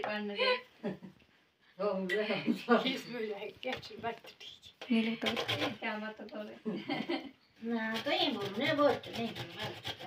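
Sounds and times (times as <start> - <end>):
woman talking: 0.0 - 0.7, 1.8 - 6.8, 7.6 - 9.8.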